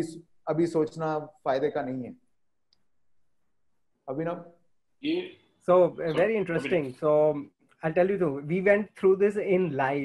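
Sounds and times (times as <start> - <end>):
man's voice: 5.0 - 10.0.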